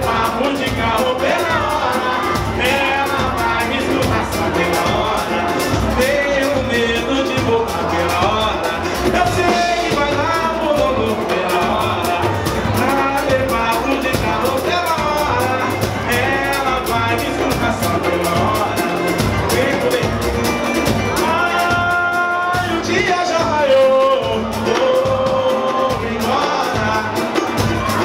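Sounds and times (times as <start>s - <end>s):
band playing live: 0.0s - 28.0s
hand percussion: 0.0s - 28.0s
man singing: 0.0s - 28.0s.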